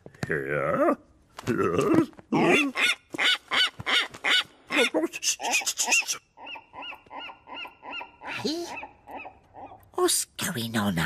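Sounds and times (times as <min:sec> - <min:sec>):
cartoon laugh-like squawking: 0:04.7 - 0:09.7.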